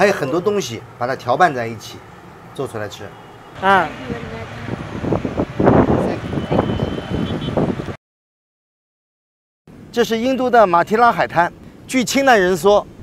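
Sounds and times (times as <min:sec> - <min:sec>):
people talking: 0:00.0 - 0:02.0, 0:02.6 - 0:04.8, 0:05.9 - 0:07.2, 0:10.0 - 0:12.8.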